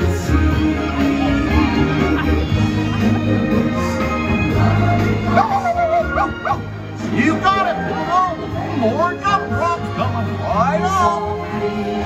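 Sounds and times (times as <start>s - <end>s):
parade music: 0.0s - 12.0s
cartoon dog barking and yipping: 5.3s - 6.6s.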